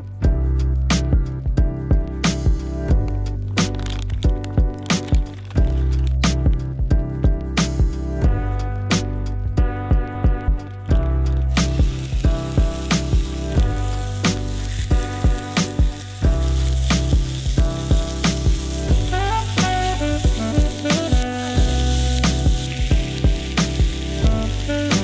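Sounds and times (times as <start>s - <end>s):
background music with steady beat: 0.0s - 25.0s
meat sizzling in a pan: 11.5s - 25.0s.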